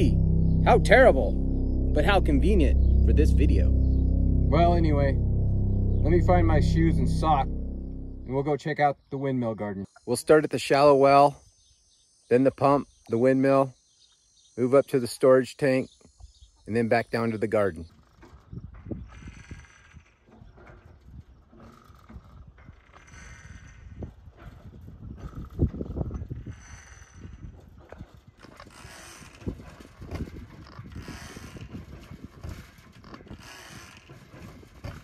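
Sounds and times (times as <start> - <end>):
windmill squeaking and clanking: 9.5 - 13.7, 14.3 - 35.0
wind rumble on microphone: 17.9 - 35.0.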